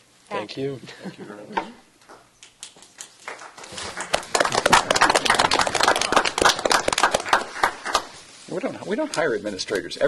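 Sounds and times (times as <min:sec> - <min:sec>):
audience clapping: 0:02.6 - 0:08.2.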